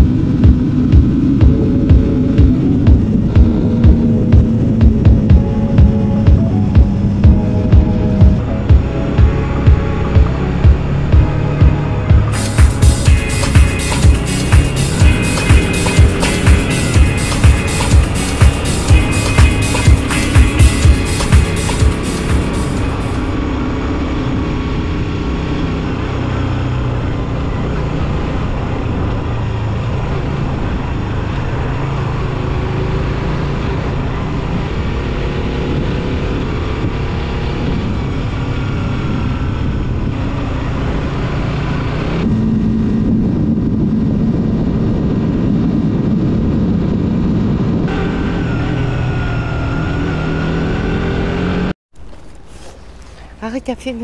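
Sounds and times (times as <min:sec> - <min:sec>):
music playing: 0:00.0 - 0:23.4
wind rush on microphone: 0:00.0 - 0:49.3
motorcycle engine: 0:00.0 - 0:53.4.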